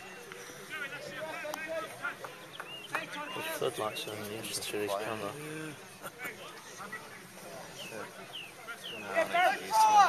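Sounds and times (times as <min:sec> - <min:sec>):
players and spectators calling: 0:00.1 - 0:06.4, 0:07.9 - 0:10.0.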